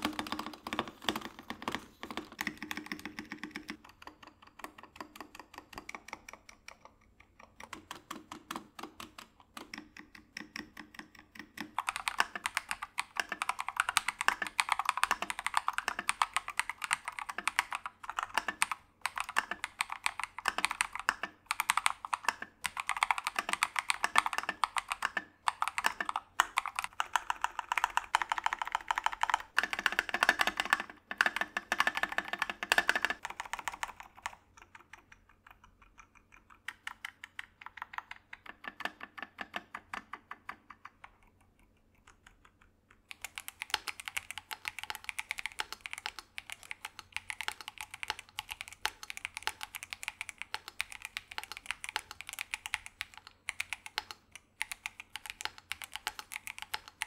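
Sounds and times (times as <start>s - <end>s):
mechanical keyboard typing: 0.0s - 57.0s.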